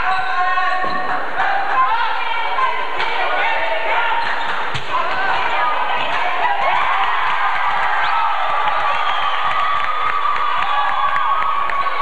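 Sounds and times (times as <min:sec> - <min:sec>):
spectators chattering and shouting: 0:00.0 - 0:12.0.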